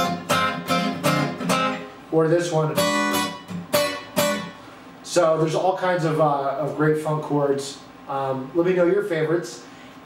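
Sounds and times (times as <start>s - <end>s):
acoustic guitar chord strummed: 0.0s - 4.8s.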